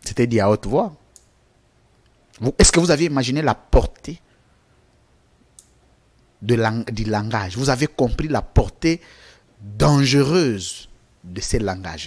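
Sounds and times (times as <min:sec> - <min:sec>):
man speaking: 0:00.0 - 0:01.0, 0:02.4 - 0:04.2, 0:06.4 - 0:09.0, 0:09.6 - 0:12.0.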